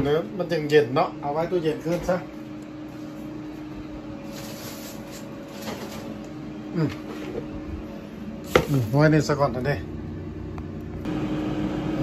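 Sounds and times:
air fryer electric hum: 0.0 - 12.0.

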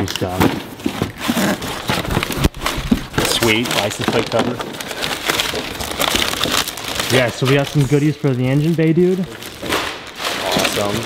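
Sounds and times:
packing paper rustling: 0.0 - 11.0.

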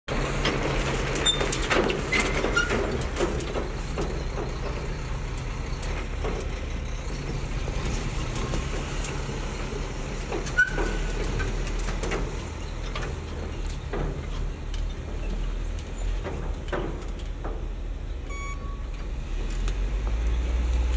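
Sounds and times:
diesel engine rumbling: 0.1 - 20.9.

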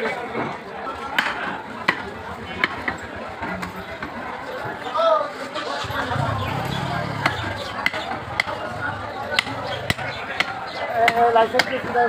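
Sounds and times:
cleaver chopping on wooden block: 9.3 - 11.9.

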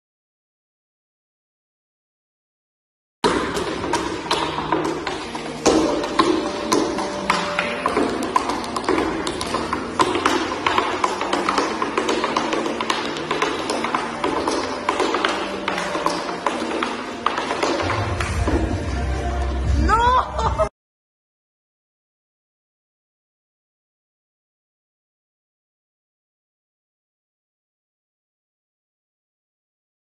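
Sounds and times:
tap shoes on wooden floor: 3.2 - 18.8.

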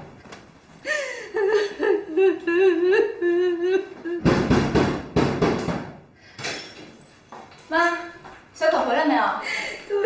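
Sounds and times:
woman humming: 1.5 - 4.3.

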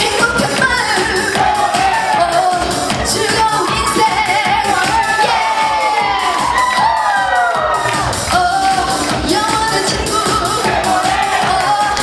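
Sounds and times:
woman singing into microphone: 0.0 - 6.5, 8.3 - 12.0
backing track with steady beat: 0.0 - 12.0
audience cheering: 0.6 - 9.5, 10.2 - 12.0.

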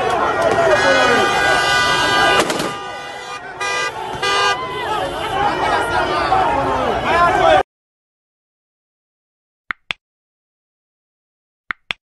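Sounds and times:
crowd shouting: 0.0 - 7.6
vehicle horn blasts: 0.6 - 7.4.

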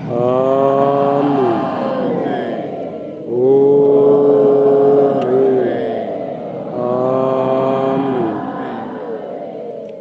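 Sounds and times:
voices singing long notes: 0.0 - 10.0.

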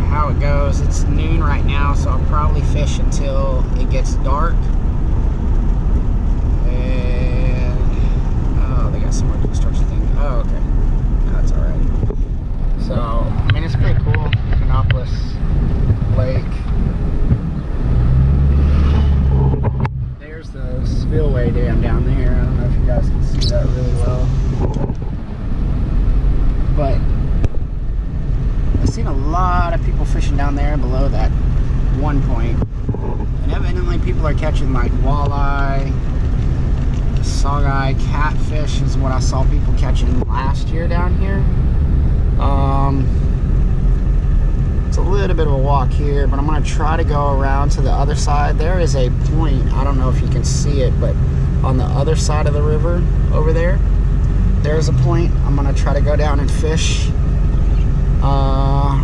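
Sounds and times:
deep hum: 0.0 - 59.0
engine and road rumble: 0.0 - 59.0.

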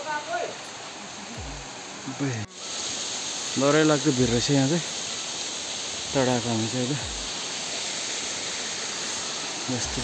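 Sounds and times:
stream rushing over stones: 0.0 - 10.0.

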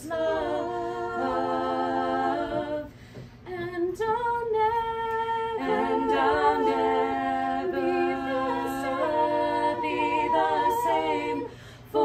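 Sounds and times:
women singing a cappella: 0.0 - 12.0.

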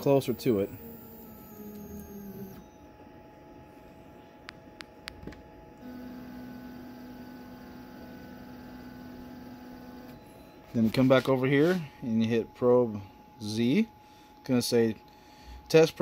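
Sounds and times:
stepper motor hum: 0.0 - 3.9, 5.7 - 10.5.

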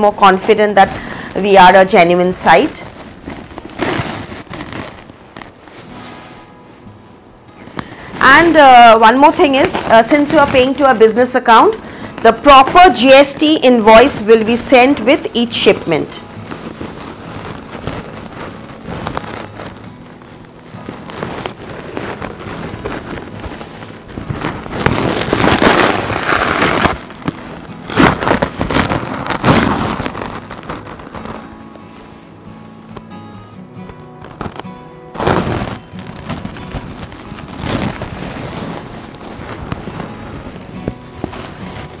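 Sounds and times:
silk fabric rustling: 0.0 - 42.0.

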